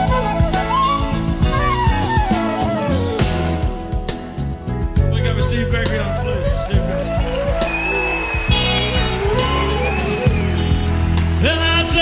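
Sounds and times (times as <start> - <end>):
live band playing instrumental: 0.0 - 12.0.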